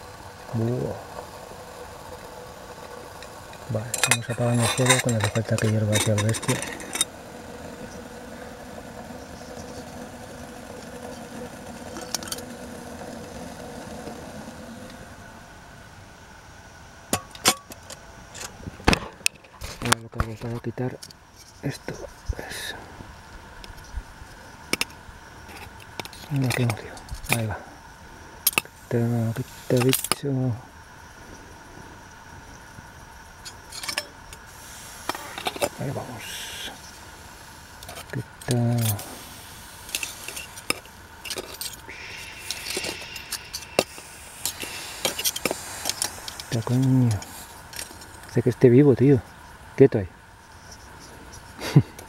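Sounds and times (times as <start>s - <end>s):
alcohol burner hissing: 0.0s - 52.0s
faint hum: 0.0s - 52.0s.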